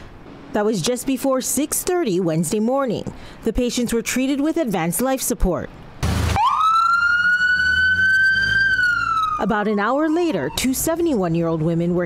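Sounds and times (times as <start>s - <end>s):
vehicle engine rumble: 5.7s - 12.0s
ambulance siren wailing: 6.3s - 11.3s.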